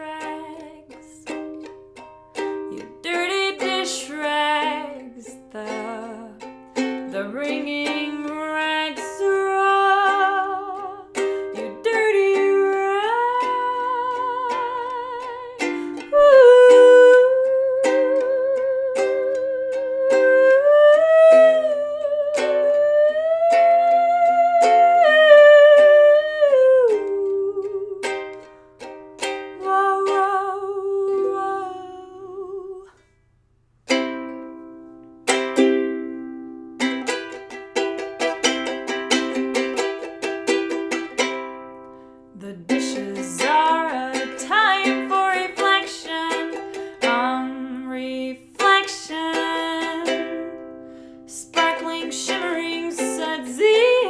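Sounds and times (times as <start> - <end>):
ukulele strumming: 0.0 - 33.1, 33.8 - 54.0.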